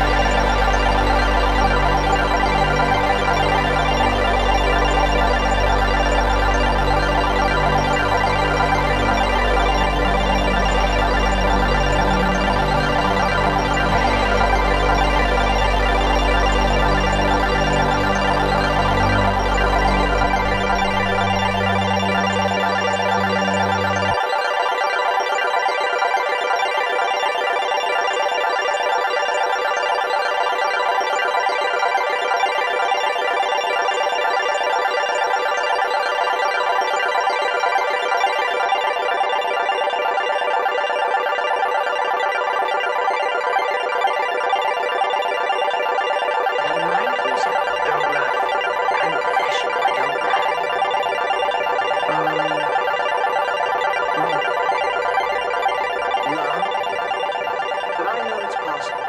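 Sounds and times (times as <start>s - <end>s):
sustained held tones: 7.8s - 24.2s.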